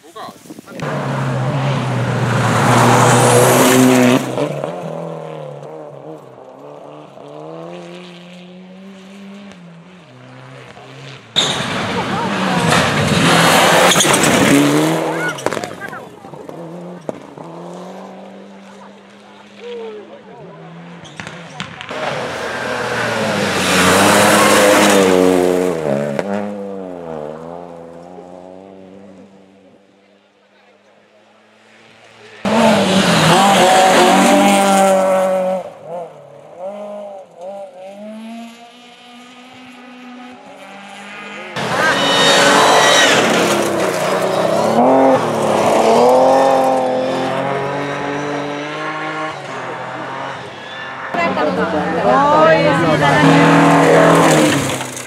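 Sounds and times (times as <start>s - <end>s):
rally cars passing: 0.0s - 55.0s
engine revving hard: 10.2s - 18.8s, 20.7s - 27.6s, 32.4s - 35.8s, 36.6s - 55.0s.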